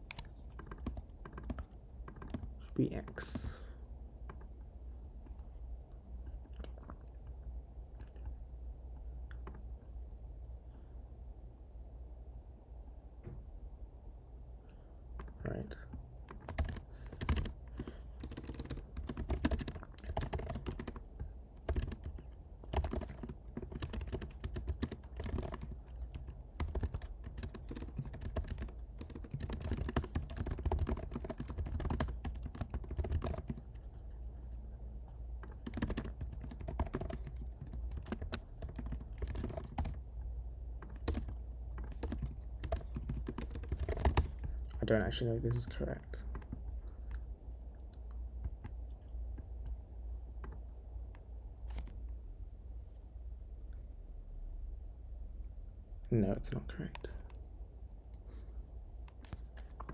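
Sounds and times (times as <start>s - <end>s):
computer keyboard key clicks: 0.0s - 2.5s, 21.6s - 33.7s, 35.4s - 40.0s.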